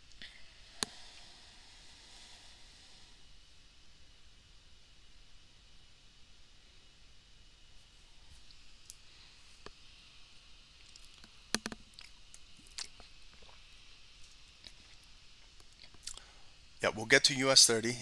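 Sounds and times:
faint steady hiss: 0.0 - 18.0
small sharp clicks: 10.8 - 12.8.

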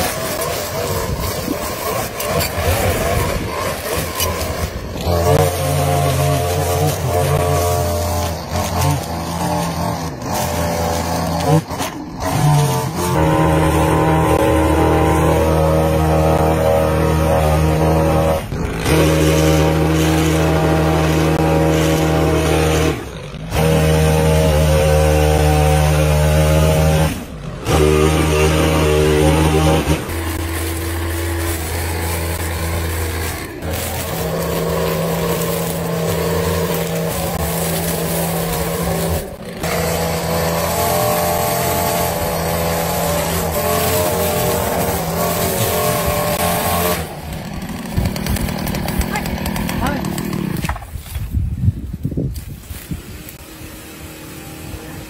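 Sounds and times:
string trimmer engine running: 0.0 - 51.3, 52.8 - 55.0
hedge trimmer engine running: 0.0 - 55.0.

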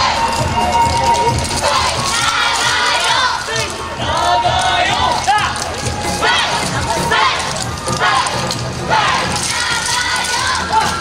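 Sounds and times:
group of dancers shouting calls: 1.4 - 11.0.

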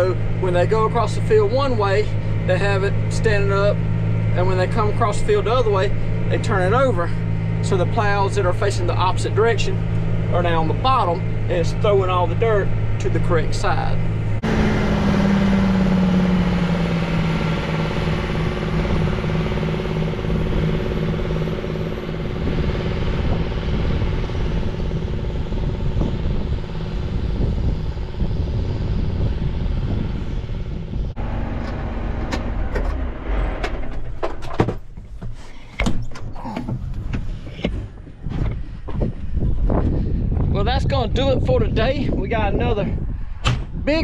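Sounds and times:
tractor diesel engine running: 0.0 - 42.8
wind gusts on microphone: 13.6 - 33.9, 36.7 - 44.0.

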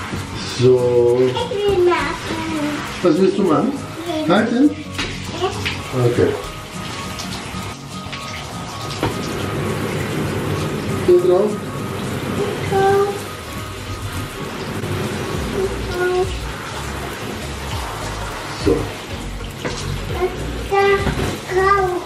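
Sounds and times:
shower head spraying water: 0.0 - 22.0.

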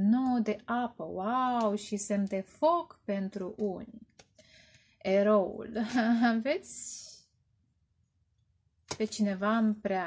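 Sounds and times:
woman speaking: 0.0 - 4.0, 5.0 - 7.2, 8.9 - 10.0.

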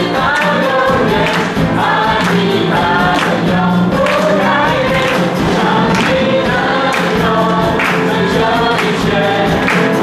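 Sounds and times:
group singing worship song: 0.0 - 10.0
musical accompaniment: 0.0 - 10.0.

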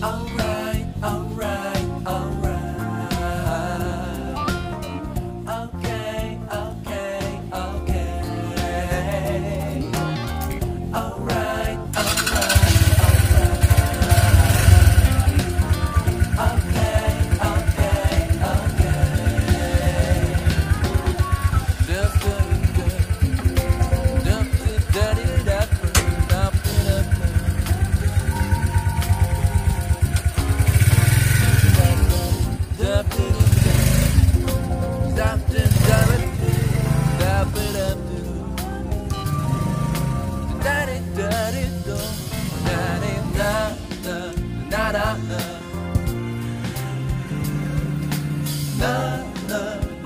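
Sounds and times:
music playing: 0.0 - 50.0
motorcycle engine starting and revving: 8.9 - 50.0.

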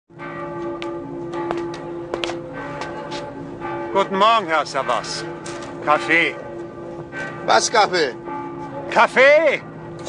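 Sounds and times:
church bells ringing: 0.1 - 10.0.

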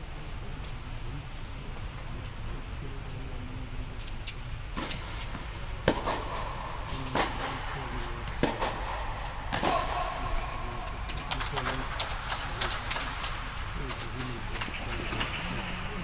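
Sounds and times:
tennis ball hit by rackets: 4.8 - 7.6, 8.2 - 13.4.

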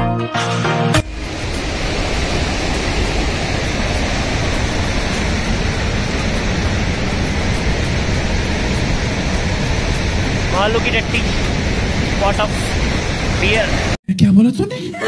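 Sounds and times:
river rushing over rocks: 1.0 - 14.0.

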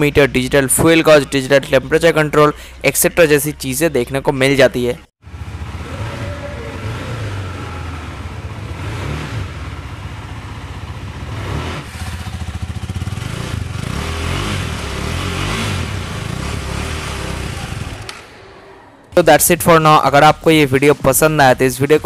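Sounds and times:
motorcycle engine idling and revving: 5.2 - 18.3.

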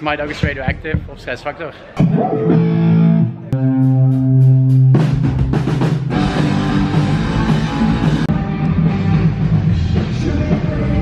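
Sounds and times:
bass guitar: 2.0 - 11.0
electric guitar chords: 2.0 - 11.0
drum kit with cymbals: 3.8 - 11.0.

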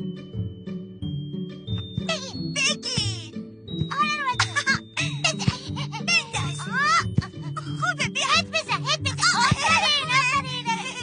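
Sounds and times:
light cartoon background music: 0.0 - 11.0.

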